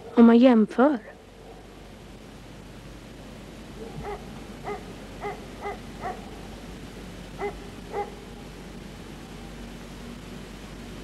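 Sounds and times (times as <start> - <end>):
steady background hiss: 0.0 - 11.0
dog yapping: 3.8 - 6.2.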